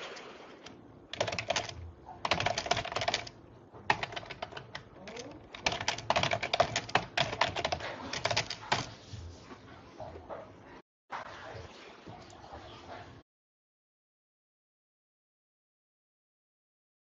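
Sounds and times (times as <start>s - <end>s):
computer keyboard typing: 1.1s - 9.0s.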